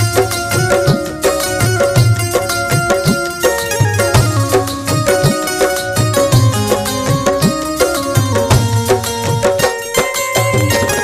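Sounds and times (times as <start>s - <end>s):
banjo: 0.0s - 11.0s
drum machine beat: 0.0s - 11.0s
electronic keyboard melody: 0.0s - 11.0s.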